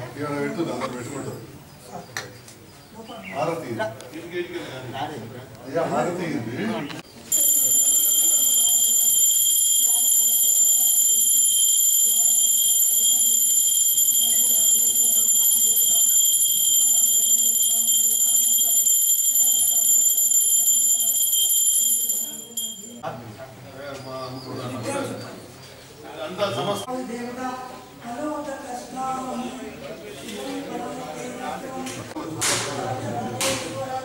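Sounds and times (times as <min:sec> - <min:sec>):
brass hand bell ringing: 0:07.3 - 0:23.0.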